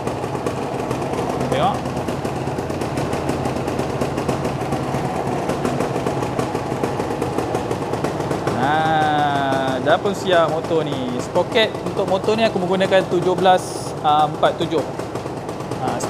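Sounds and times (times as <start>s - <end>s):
two-stroke engine idling: 0.0s - 16.0s.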